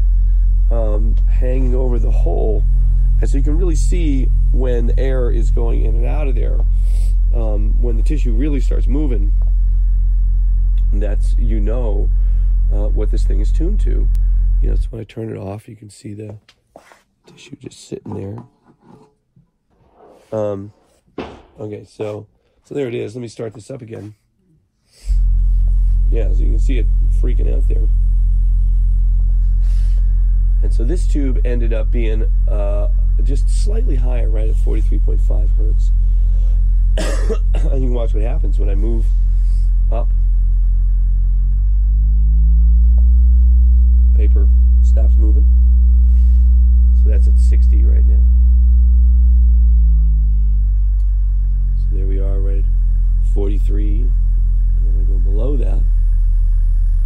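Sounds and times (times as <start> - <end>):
low test tone: 0.0 - 15.6, 25.0 - 57.0.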